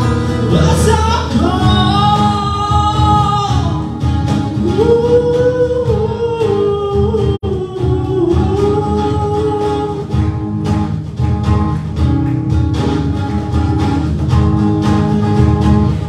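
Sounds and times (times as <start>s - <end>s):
man singing: 0.0s - 10.3s
cajon: 0.0s - 16.0s
electric bass: 0.0s - 16.0s
strummed acoustic guitars: 0.0s - 16.0s.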